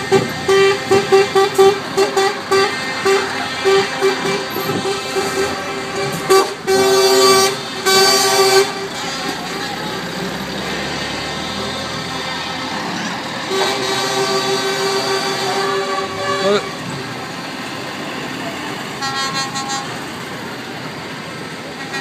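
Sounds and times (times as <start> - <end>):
lorry horn blasts: 0.0 - 10.2, 13.4 - 16.9, 19.0 - 20.0
lorries running: 0.0 - 22.0.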